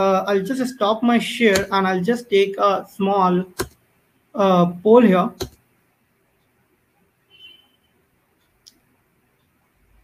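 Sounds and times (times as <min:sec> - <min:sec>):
computer mouse click: 0:01.5 - 0:01.7, 0:03.5 - 0:03.8, 0:05.4 - 0:05.6.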